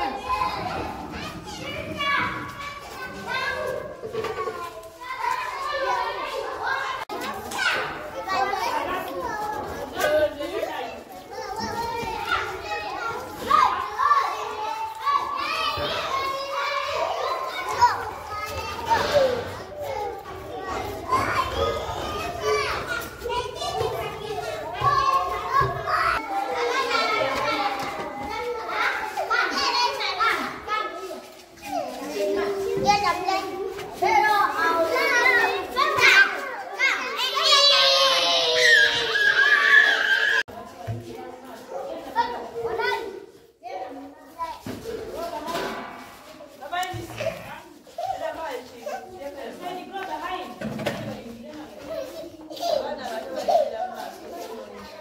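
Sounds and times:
children talking and calling out: 0.0s - 55.0s.

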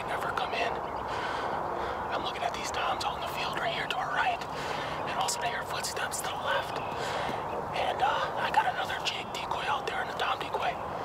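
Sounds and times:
man whispering: 0.0s - 0.9s, 2.0s - 11.0s.

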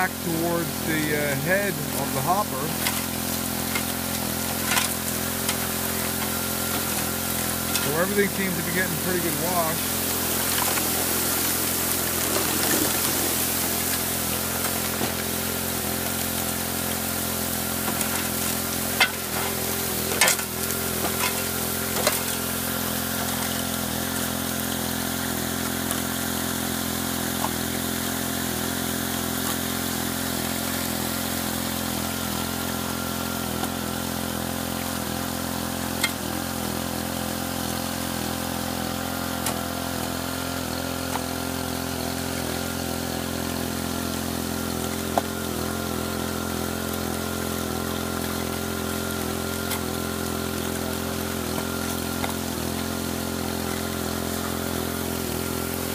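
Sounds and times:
water jets hissing: 0.0s - 55.9s
water pump droning: 0.0s - 55.9s.

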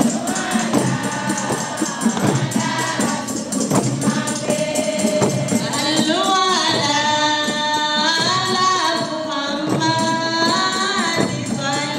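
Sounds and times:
rattling percussion beat: 0.0s - 11.9s
women singing together: 0.0s - 11.9s.

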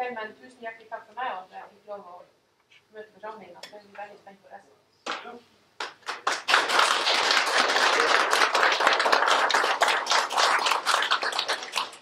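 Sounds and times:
audience applauding: 5.8s - 12.0s.

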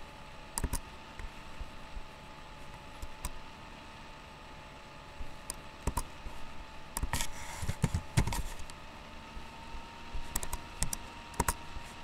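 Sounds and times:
brief rustle: 7.0s - 8.8s.

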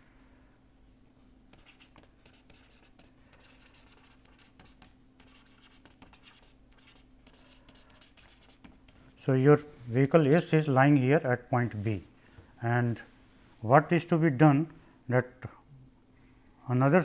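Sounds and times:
low steady hum: 0.0s - 17.0s
stylus scratching on tablet: 1.5s - 9.3s.

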